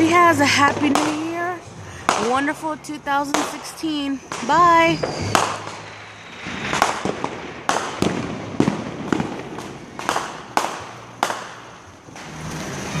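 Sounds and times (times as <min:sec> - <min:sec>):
fireworks bangs with echo: 0:00.0 - 0:12.5.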